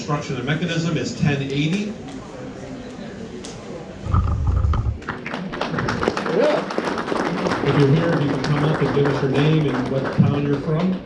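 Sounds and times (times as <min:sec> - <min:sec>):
low thud and rumble: 0:04.1 - 0:05.0
audience clapping: 0:04.9 - 0:11.0.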